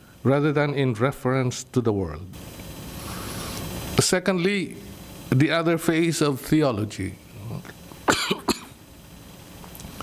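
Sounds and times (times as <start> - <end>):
man coughing: 8.1 - 8.8.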